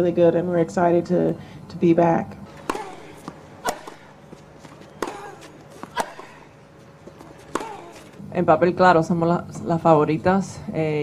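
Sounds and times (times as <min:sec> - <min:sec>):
tennis balls struck by rackets: 0:02.4 - 0:08.2.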